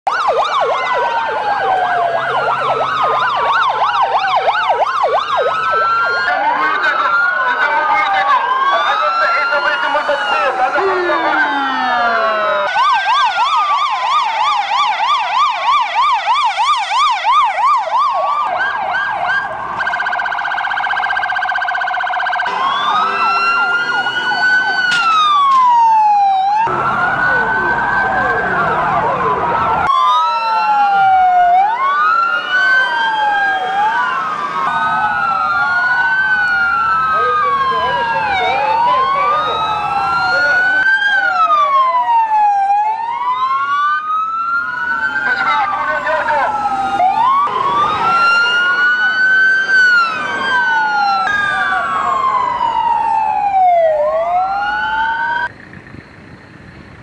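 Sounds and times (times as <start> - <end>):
police sirens wailing: 0.0 - 57.0
fast warbling siren: 0.1 - 56.9.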